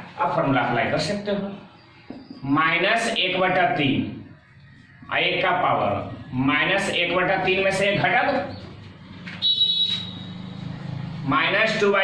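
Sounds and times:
marker squeaking on whiteboard: 8.3 - 10.6.

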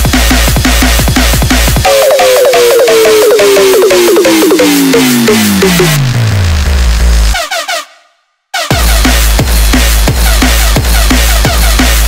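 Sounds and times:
fast electronic drums: 0.0 - 7.3, 8.7 - 12.0
deep bass sliding down: 1.9 - 7.4.

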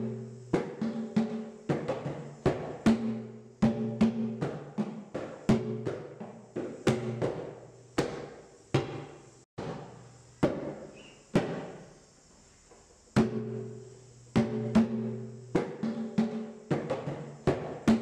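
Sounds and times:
hand drums: 0.0 - 11.8, 13.2 - 18.0.

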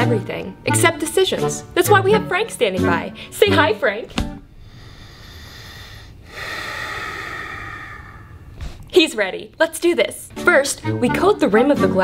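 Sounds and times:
person exhaling: 4.6 - 8.9.

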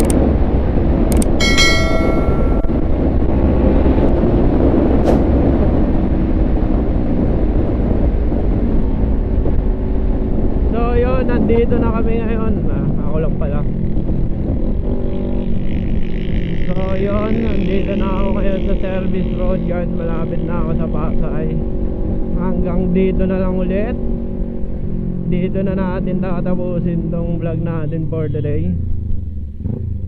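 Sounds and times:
wind noise on microphone: 0.0 - 19.5
short ringing chime: 1.4 - 2.9.

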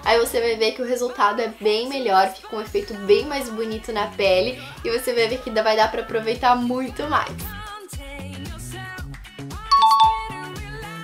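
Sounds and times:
background pop music: 0.0 - 11.0
two-note doorbell chime: 9.7 - 10.4.

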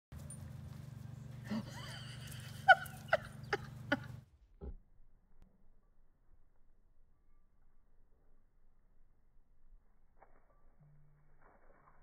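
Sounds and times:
steady low hum: 0.2 - 11.4.

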